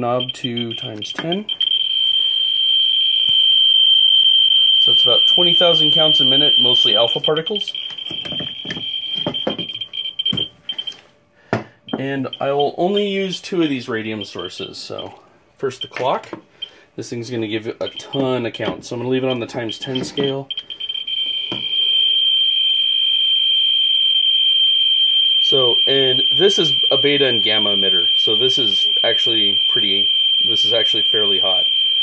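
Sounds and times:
geiger counter steady buzz: 0.2s - 11.0s, 19.2s - 32.0s.

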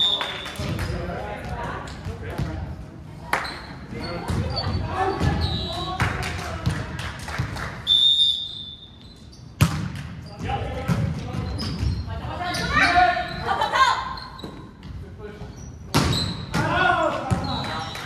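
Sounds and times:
players calling and shouting: 3.4s - 6.9s, 10.2s - 18.0s.

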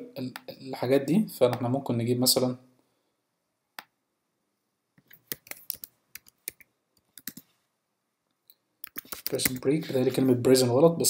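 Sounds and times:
computer keyboard typing: 5.0s - 7.5s, 8.8s - 9.7s.

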